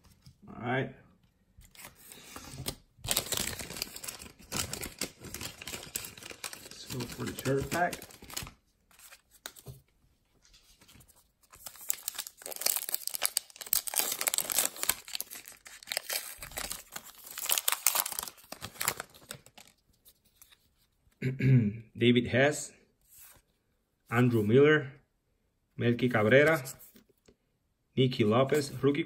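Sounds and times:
wrapper tearing and crinkling: 2.6s - 9.2s, 11.5s - 19.8s
person clearing throat: 21.2s - 21.9s.

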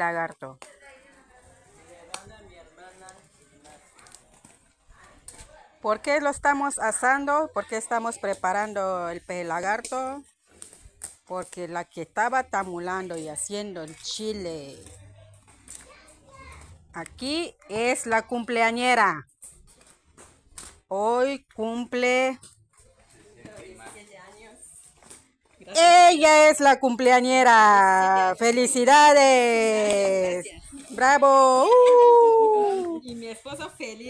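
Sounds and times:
children playing: 3.2s - 5.8s, 15.0s - 16.8s.

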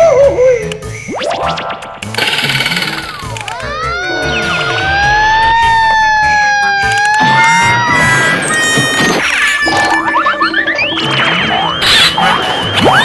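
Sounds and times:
background music: 0.0s - 13.0s
wavering siren-like tone: 3.0s - 7.8s.

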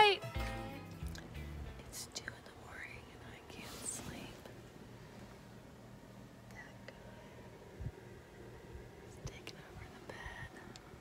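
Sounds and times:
quiet whispering voices: 1.9s - 4.6s, 6.4s - 7.4s, 9.1s - 11.0s
soft rustling: 2.7s - 5.6s.

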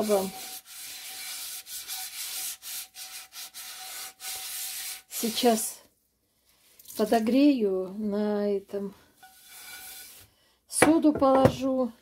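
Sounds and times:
sponge scrubbing frying pan: 0.0s - 5.6s, 9.2s - 10.3s.

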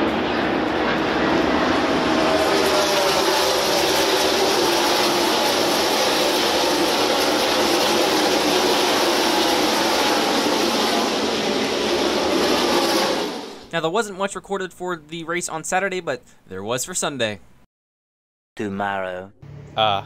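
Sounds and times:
race cars roaring past: 0.0s - 13.7s.

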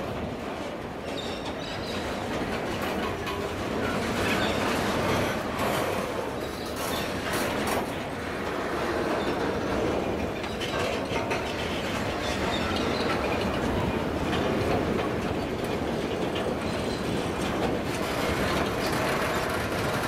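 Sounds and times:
train wagons rolling past: 0.0s - 20.0s
wheels clicking over rail joints: 0.0s - 20.0s.

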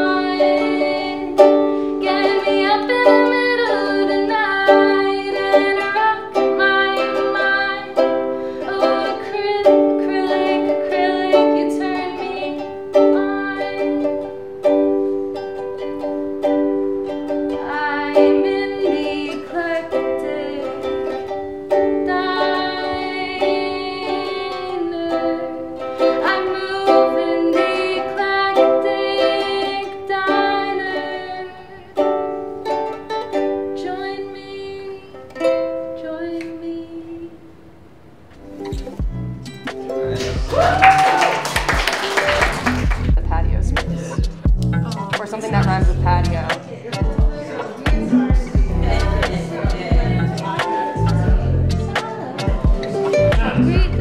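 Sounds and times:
ukulele strumming chords: 0.0s - 54.0s.

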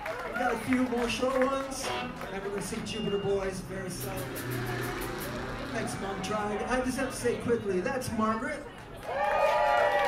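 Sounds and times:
people talking: 0.4s - 8.9s
band instruments sounding loosely: 1.8s - 7.4s
low held note: 3.6s - 7.2s.

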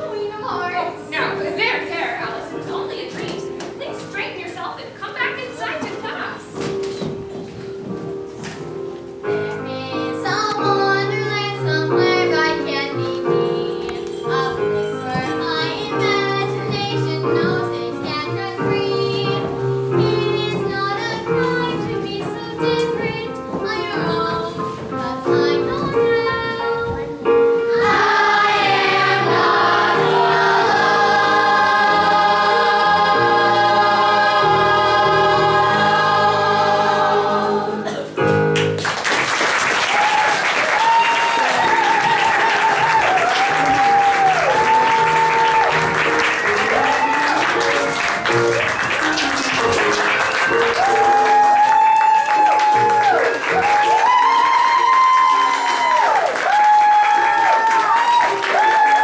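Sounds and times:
cast singing with accompaniment: 9.4s - 38.2s
audience applauding: 38.6s - 59.0s.

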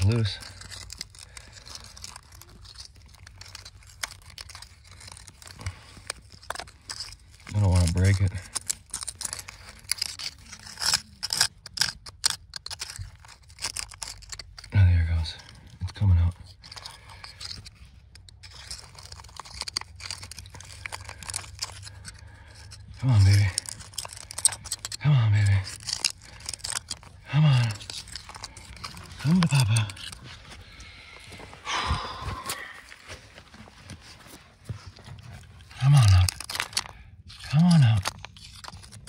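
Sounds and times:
metal pick scraping rock: 0.0s - 31.7s, 32.3s - 39.0s.

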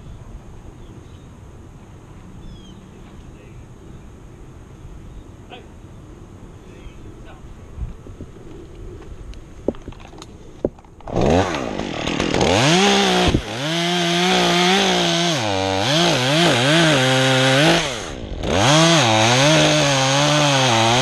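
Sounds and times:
chainsaw cutting wood: 10.6s - 21.0s.

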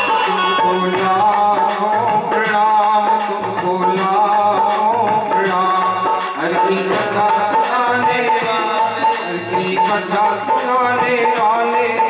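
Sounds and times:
hand drum beat: 0.0s - 12.0s
person singing devotional melody: 0.0s - 12.0s.

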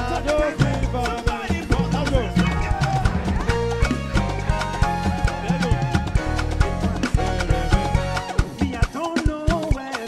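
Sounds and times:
person singing: 0.0s - 6.2s, 7.0s - 10.0s
drum kit beat: 0.0s - 10.0s
keyboard and bass: 0.0s - 10.0s.

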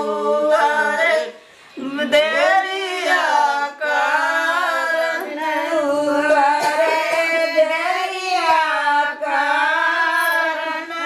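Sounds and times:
women singing unaccompanied: 0.0s - 11.0s.

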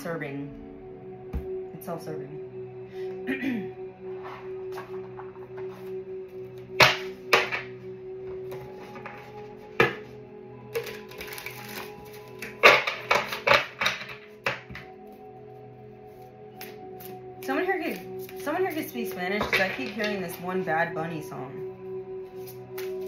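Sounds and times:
soft background music: 0.0s - 23.0s
cards being shuffled: 17.9s - 18.9s, 22.4s - 23.0s.

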